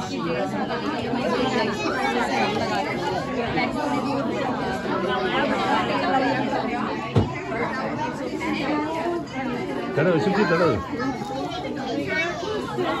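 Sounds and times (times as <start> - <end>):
children and adults chattering: 0.0 - 13.0.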